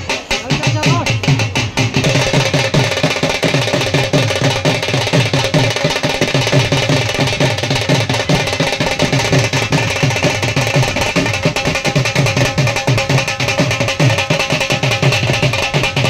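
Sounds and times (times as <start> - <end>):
constant hiss: 0.0 - 16.0
low drum strokes: 0.0 - 16.0.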